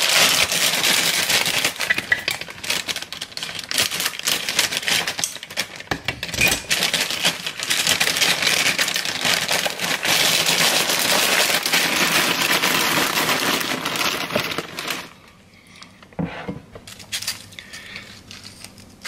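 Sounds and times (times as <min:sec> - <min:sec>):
plastic bag crinkling: 0:00.0 - 0:15.2.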